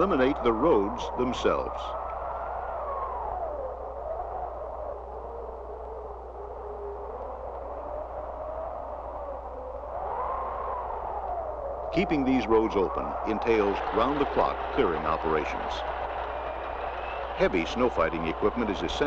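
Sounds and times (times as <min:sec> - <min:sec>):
howling wind: 0:00.0 - 0:19.0.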